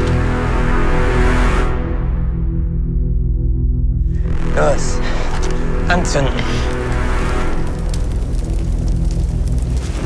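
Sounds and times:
low music: 0.0s - 10.0s.

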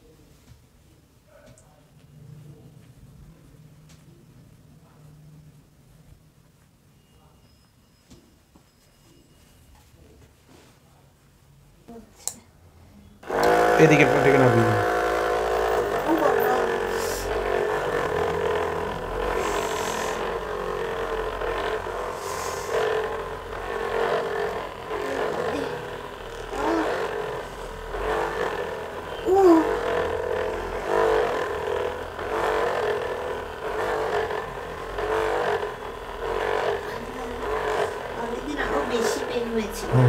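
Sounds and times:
electric massager motor hum: 13.2s - 40.0s.

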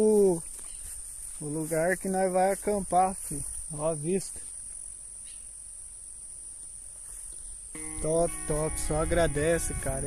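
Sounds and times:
crickets trilling: 0.0s - 10.0s.

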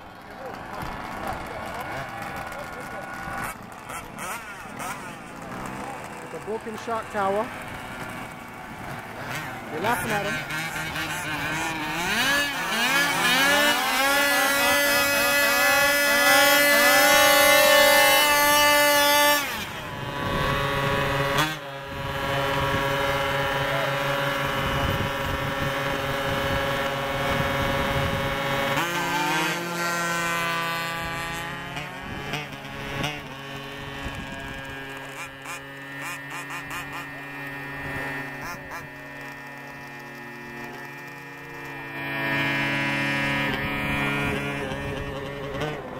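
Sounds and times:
small gasoline engines revving: 0.0s - 45.9s.

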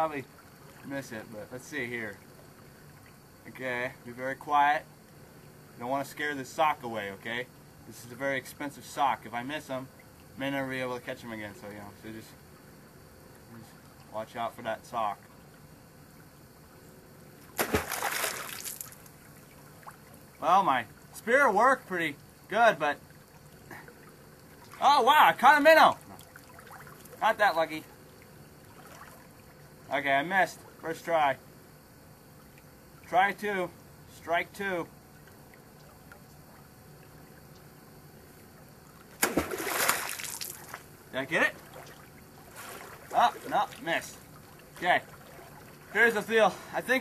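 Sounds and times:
stream trickling: 0.0s - 47.0s
spear splashing into water: 17.5s - 19.1s, 39.0s - 40.8s, 41.6s - 43.8s.

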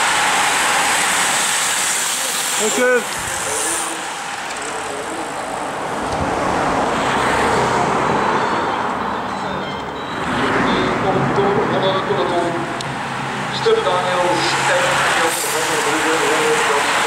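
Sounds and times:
bicycle tyres hissing and rushing air: 0.0s - 7.6s.

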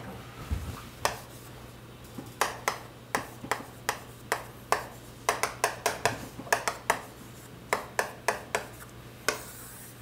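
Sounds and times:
chalk tapping on a chalkboard: 1.0s - 1.4s, 2.2s - 9.9s.

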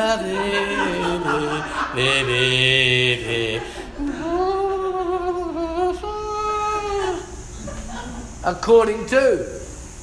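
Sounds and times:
man singing unaccompanied: 0.0s - 7.3s.

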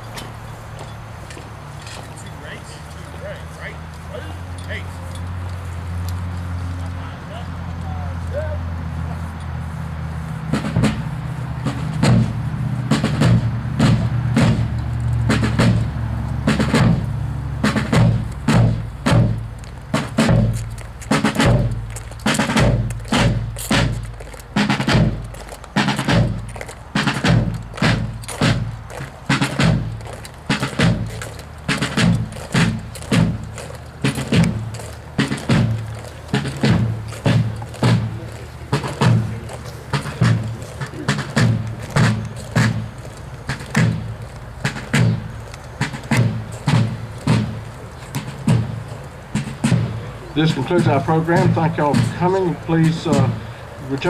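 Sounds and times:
field drums marching cadence: 0.0s - 54.0s.

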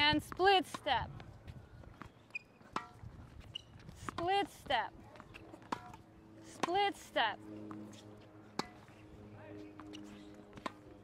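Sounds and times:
faint high squeaks: 2.0s - 2.7s, 3.4s - 3.8s
tennis racket hitting ball: 2.7s - 3.0s, 5.6s - 7.0s, 8.6s - 8.8s.

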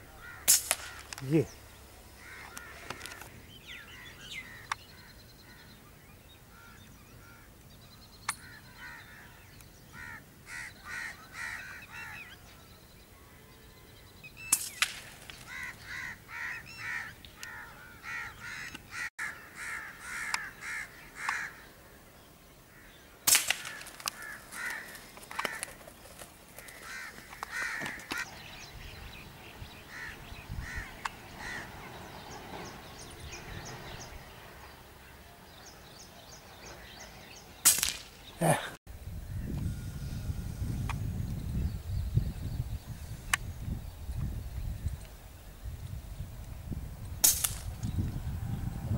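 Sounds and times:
birds calling harshly: 0.0s - 22.0s, 22.6s - 38.8s
sharp cracks: 0.4s - 1.4s, 14.5s - 15.8s, 23.2s - 28.2s, 37.6s - 38.3s, 47.2s - 47.9s.

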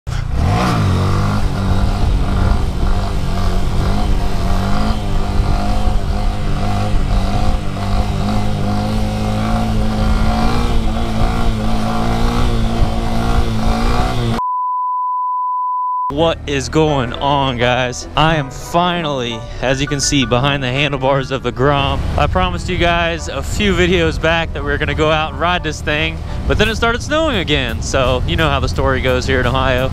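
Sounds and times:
motorcycle engine revving: 0.1s - 14.4s, 21.1s - 29.9s
test-tone beep: 14.4s - 16.2s.

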